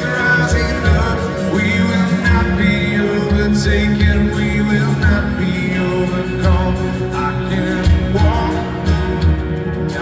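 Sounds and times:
keyboard: 0.0 - 10.0
male lead vocal: 0.0 - 10.0
strummed acoustic guitar: 0.0 - 10.0.

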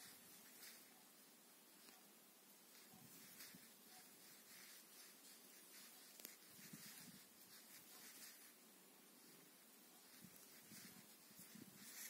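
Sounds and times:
yarn and crochet hook rustling: 0.0 - 12.0.

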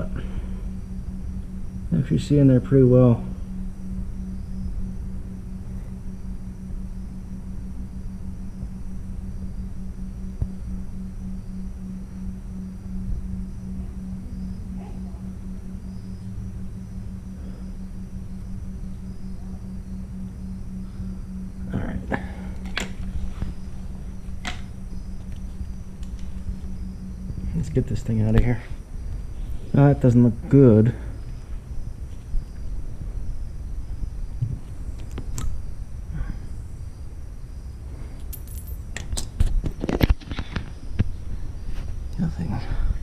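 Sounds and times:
crickets chirping: 0.0 - 43.0
low mechanical hum with flutter: 0.0 - 43.0.

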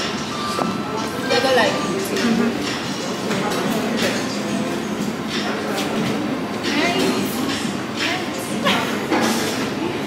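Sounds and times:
restaurant background chatter: 0.0 - 10.0.

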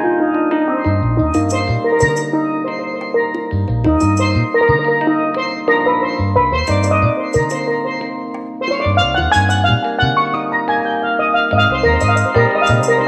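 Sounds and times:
steel pan melody: 0.0 - 13.0
jazzy bass and drums backing: 0.9 - 2.4, 3.5 - 4.8, 6.2 - 7.8, 8.9 - 10.2, 11.5 - 13.0.

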